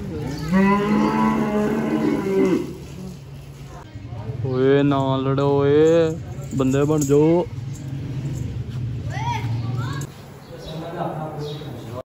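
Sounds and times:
cow mooing: 0.3 - 2.8.

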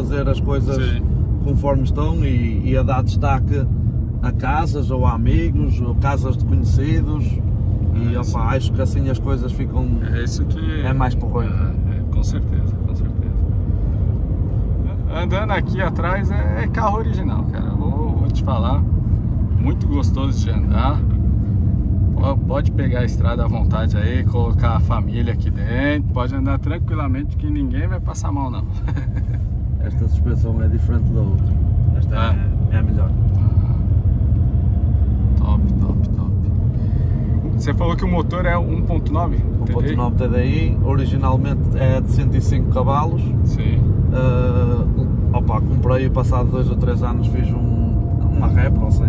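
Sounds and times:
car cabin road and engine noise: 0.0 - 49.0.

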